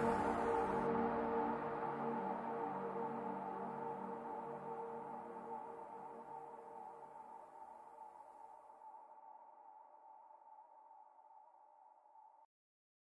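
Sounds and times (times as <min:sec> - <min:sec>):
held synthesizer chord: 0:00.0 - 0:07.6.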